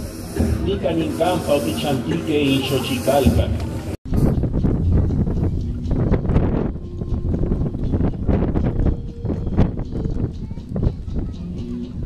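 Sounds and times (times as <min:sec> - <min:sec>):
wind buffeting microphone: 0:03.5 - 0:12.0.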